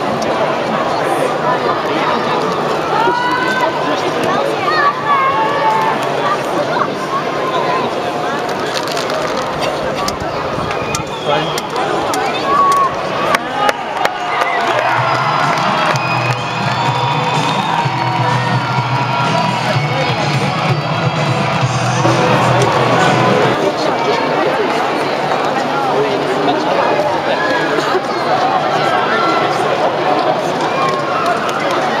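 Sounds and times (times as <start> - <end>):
crowd shouting and cheering: 0.0 - 32.0.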